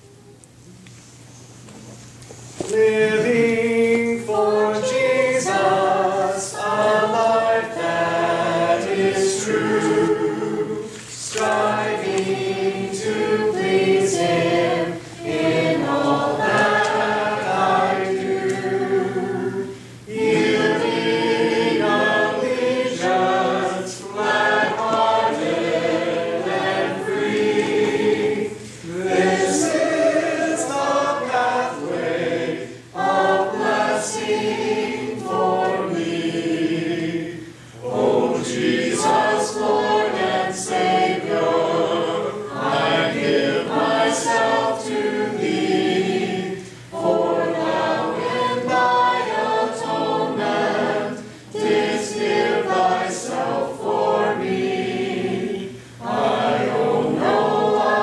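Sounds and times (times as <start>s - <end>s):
congregation singing a hymn: 2.4s - 58.0s.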